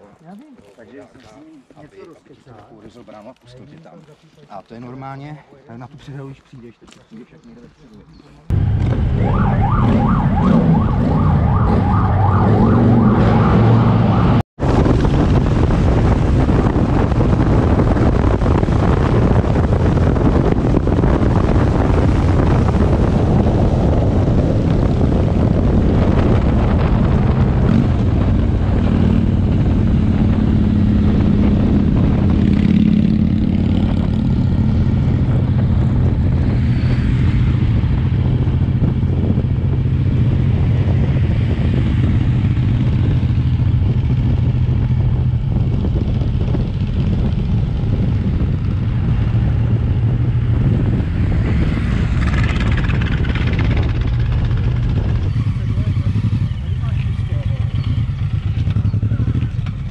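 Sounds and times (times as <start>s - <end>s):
road and air noise: 8.3s - 59.9s
motorcycle engine running: 14.6s - 59.9s.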